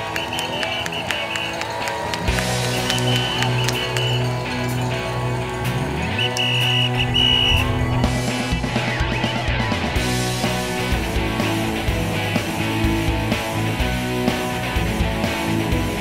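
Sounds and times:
background music with steady beat: 0:00.0 - 0:16.0
deep bass line: 0:05.1 - 0:16.0.

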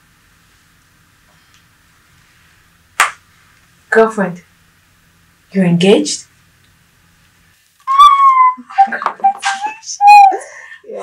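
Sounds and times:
sharp clap-like hit with ring: 0:03.0 - 0:03.2.

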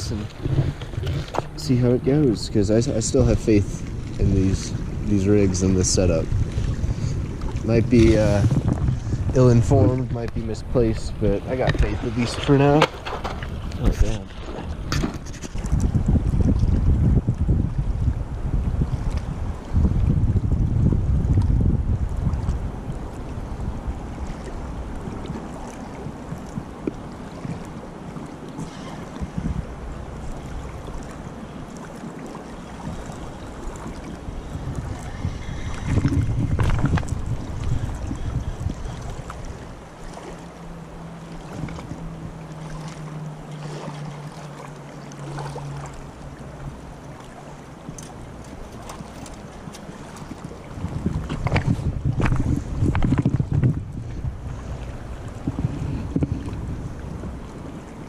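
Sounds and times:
wind buffeting microphone: 0:00.0 - 0:43.0, 0:45.2 - 0:58.0
river flowing: 0:36.9 - 0:51.2.

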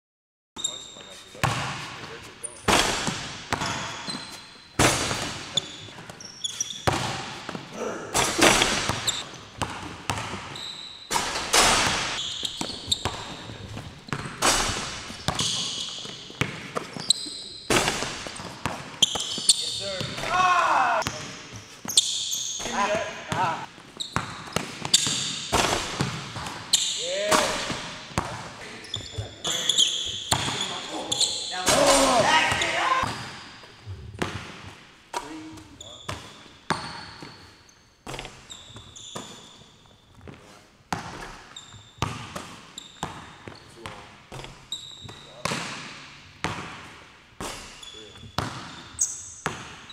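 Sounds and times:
short high squeaks: 0:00.6 - 0:01.4, 0:10.5 - 0:11.2, 0:12.2 - 0:13.1, 0:19.0 - 0:20.0, 0:44.7 - 0:45.3
basketball bouncing on hardwood: 0:08.5 - 0:16.9.

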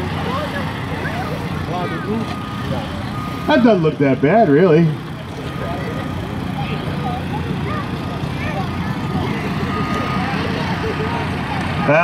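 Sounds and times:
excavator working: 0:00.0 - 0:12.0
faint voices: 0:00.0 - 0:12.0.

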